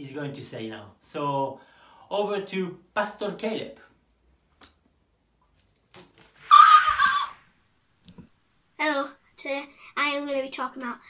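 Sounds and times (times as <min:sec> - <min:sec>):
boy screaming: 0:06.5 - 0:07.4.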